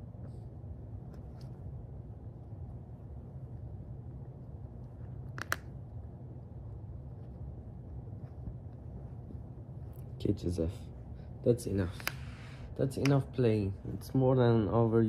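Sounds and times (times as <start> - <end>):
low room hum: 0.0 - 15.0
soft rustling: 6.8 - 14.2.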